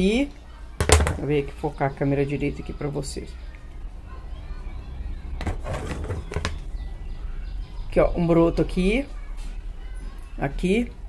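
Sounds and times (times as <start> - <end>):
phone handling knocks: 0.8 - 1.3, 5.4 - 6.6.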